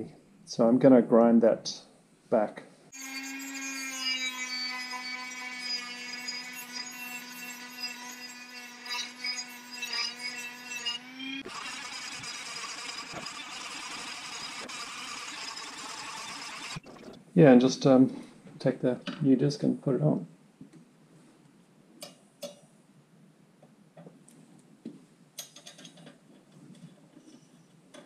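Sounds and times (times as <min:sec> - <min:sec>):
electric rotary tool grinding steel: 0:03.0 - 0:17.1.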